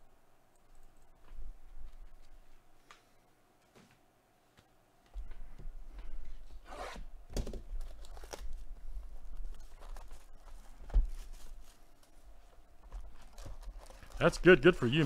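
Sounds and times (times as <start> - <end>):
wrapping being torn: 7.8 - 12.2.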